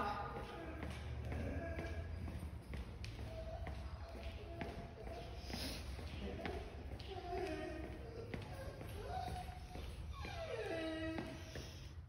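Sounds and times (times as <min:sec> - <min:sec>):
dog whining: 0:08.8 - 0:12.0.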